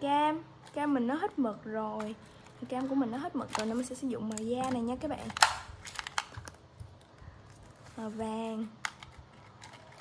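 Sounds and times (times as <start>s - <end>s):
plastic pen clicks and taps: 8.8s - 9.2s.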